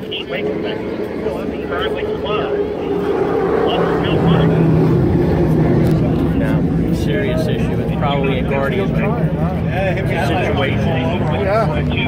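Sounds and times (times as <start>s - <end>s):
race boat engines droning: 0.0s - 12.0s.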